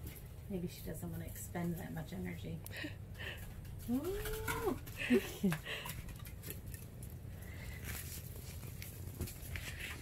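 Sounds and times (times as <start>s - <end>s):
woman's drawn-out vocal exclamation: 3.9s - 4.8s.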